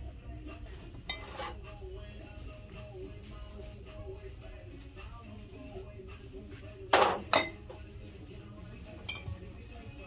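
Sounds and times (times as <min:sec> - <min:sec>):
glass bottles clinking: 0:07.0 - 0:07.6, 0:09.0 - 0:09.3.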